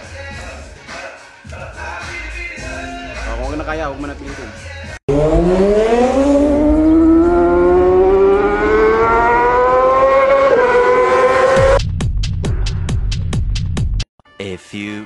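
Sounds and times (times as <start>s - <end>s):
steadily rising pitched tone: 5.1s - 11.8s.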